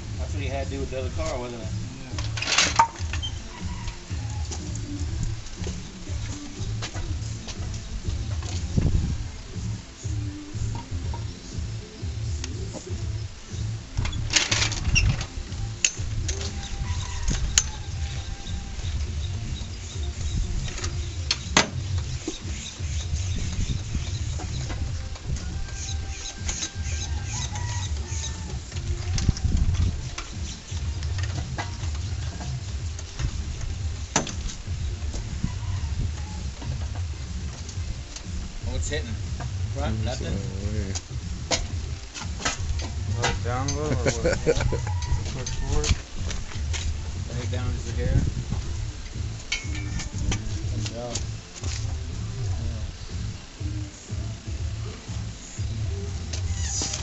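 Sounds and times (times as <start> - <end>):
low rumble: 27.1 - 56.1.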